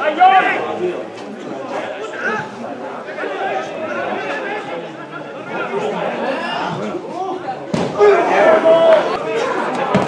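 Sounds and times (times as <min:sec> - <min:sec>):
people shouting: 0:06.3 - 0:10.0.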